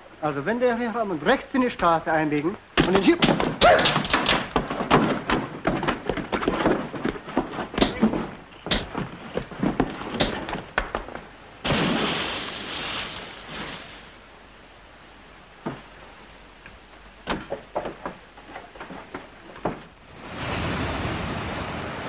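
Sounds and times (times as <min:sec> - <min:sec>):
rapid knocks and thuds: 0:02.8 - 0:12.0, 0:17.2 - 0:20.0.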